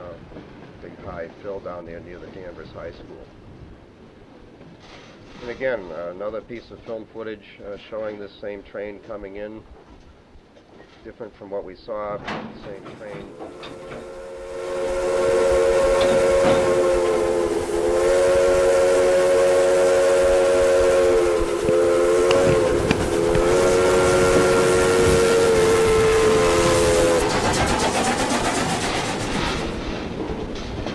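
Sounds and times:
train clattering past: 12.1 - 30.9
steam locomotive chime whistle: 13.2 - 27.3.

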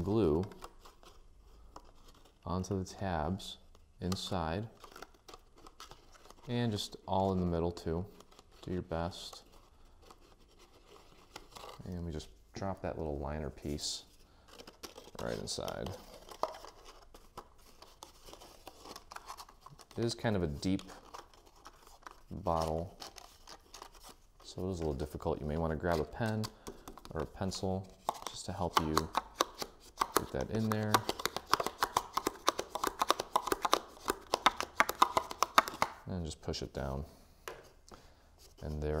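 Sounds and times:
cardstock rustling and crinkling: 0.0 - 2.7, 3.7 - 36.0
paper clicking against paper: 28.1 - 36.0.

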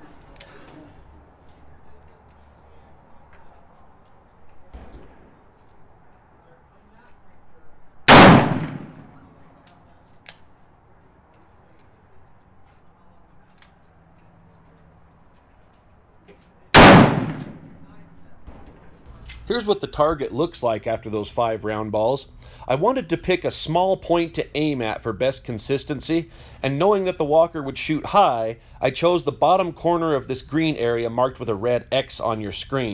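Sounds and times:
revolver shots echoing: 8.1 - 9.3, 16.8 - 18.0.

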